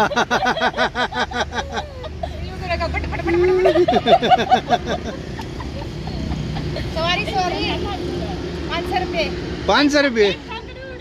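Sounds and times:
vehicle engine droning: 0:00.0 - 0:11.0
woman speaking: 0:02.4 - 0:04.3, 0:06.9 - 0:09.3.

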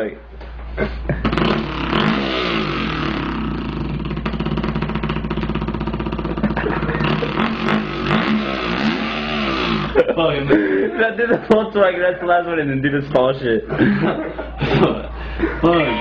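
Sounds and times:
man imitating dirt bike engine: 0:01.0 - 0:10.6.

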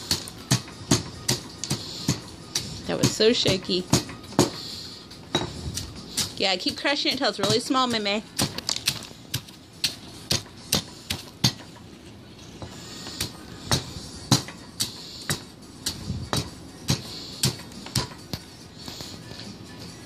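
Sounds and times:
pestle knocking stone mortar: 0:06.6 - 0:11.7.

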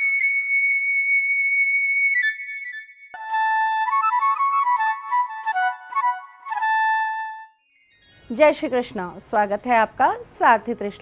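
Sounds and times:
flute playing: 0:00.0 - 0:07.7.

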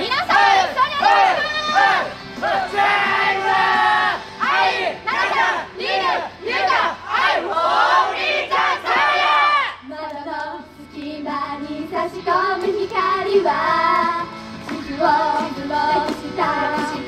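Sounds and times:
crowd shouting rhythmic chant: 0:00.0 - 0:09.8.

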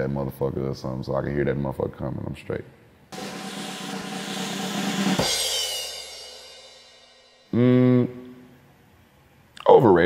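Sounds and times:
snare and cymbal wash: 0:03.1 - 0:07.6
bass drum and cymbal hit: 0:03.2 - 0:07.5.

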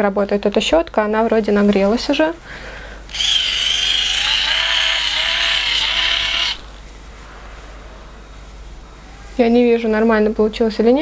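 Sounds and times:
hot-air brush motor whirring: 0:03.1 - 0:06.9.

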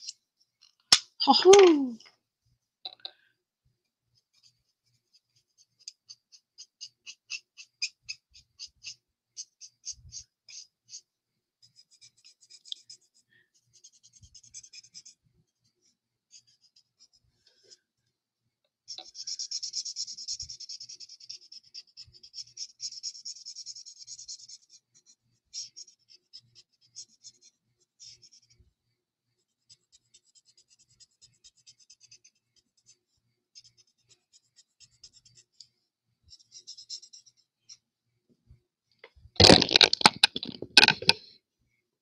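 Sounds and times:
marker nib scratching on cardstock: 0:04.2 - 0:15.6, 0:18.9 - 0:28.6, 0:29.6 - 0:35.7, 0:36.3 - 0:37.8
handling noise: 0:39.4 - 0:41.2.

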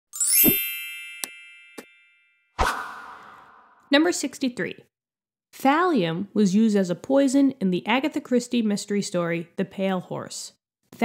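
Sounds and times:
upward shimmer into ringing chime: 0:00.2 - 0:02.2.

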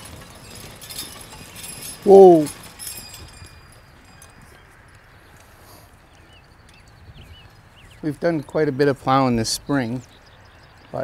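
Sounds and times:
hoof steps: 0:00.0 - 0:08.6
harness jingling: 0:00.0 - 0:11.0
bird chirps: 0:03.1 - 0:11.0.

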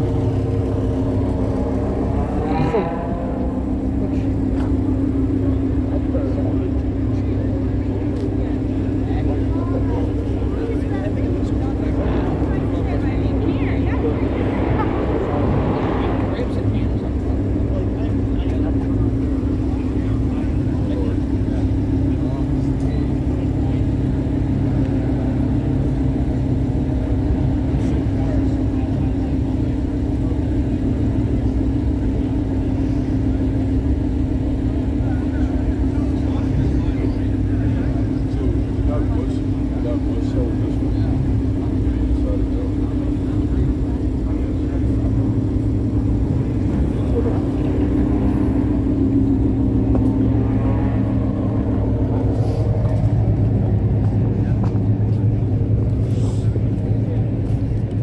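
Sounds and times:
car engine idling: 0:00.0 - 0:58.0
crowd chatter: 0:00.0 - 0:58.0.

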